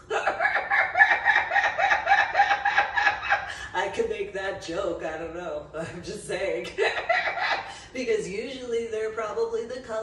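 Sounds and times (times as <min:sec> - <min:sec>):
woman laughing hard: 0:00.0 - 0:03.8, 0:06.7 - 0:07.8.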